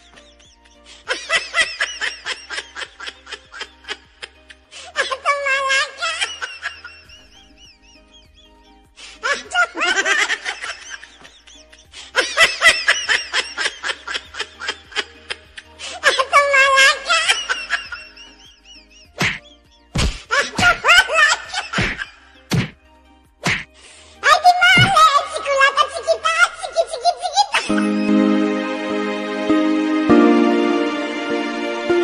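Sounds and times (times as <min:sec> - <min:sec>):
music with held chords: 0:00.0 - 0:04.9, 0:06.2 - 0:16.1, 0:27.6 - 0:32.0
high-pitched warbling laughter: 0:09.2 - 0:11.6, 0:24.8 - 0:28.2
high-pitched giggling: 0:24.8 - 0:28.1.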